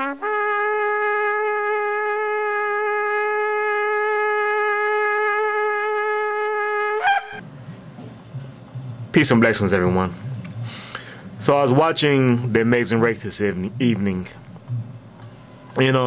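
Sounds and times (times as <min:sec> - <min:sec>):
shofar long held note: 0:00.0 - 0:07.4
low background noise: 0:00.0 - 0:16.0.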